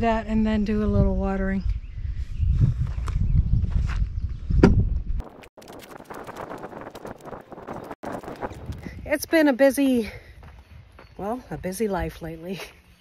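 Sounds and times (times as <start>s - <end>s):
wind rumbling on microphone: 0.0s - 12.4s
footsteps crunching on dry ground: 5.2s - 13.0s.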